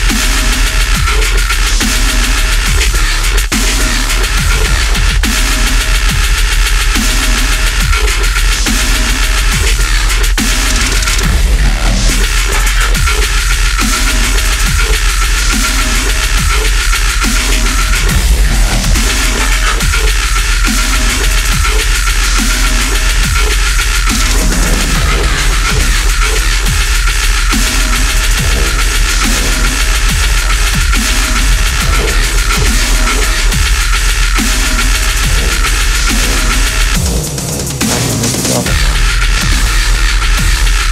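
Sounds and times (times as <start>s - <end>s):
heavy dubstep track: 0.0s - 40.9s.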